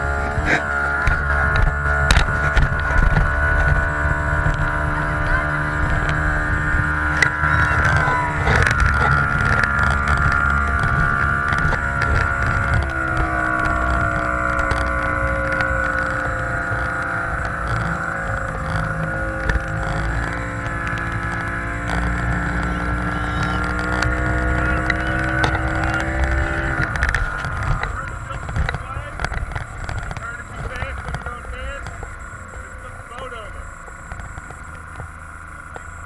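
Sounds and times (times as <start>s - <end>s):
motorboat engine running: 0.0s - 36.0s
wind: 0.0s - 36.0s.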